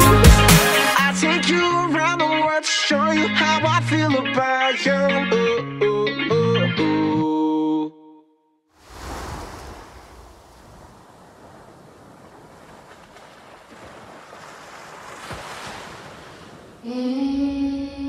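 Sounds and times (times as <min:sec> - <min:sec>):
ocean surf waves: 0:08.8 - 0:17.6.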